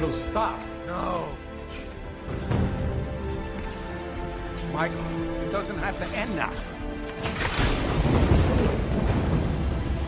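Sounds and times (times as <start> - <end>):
steady rain: 2.9 - 10.0
thunder rumbling: 7.4 - 10.0.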